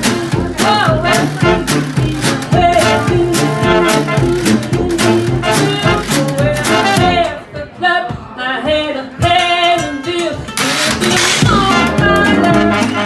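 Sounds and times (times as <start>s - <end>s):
jazz band playing swing: 0.0s - 7.5s, 9.3s - 13.0s
woman singing: 0.0s - 13.0s
strummed resonator guitar: 9.2s - 13.0s.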